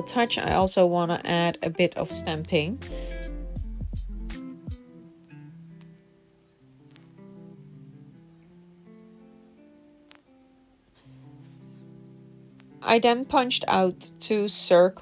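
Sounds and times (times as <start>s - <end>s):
faint clicks: 6.8s - 7.2s, 10.0s - 10.4s.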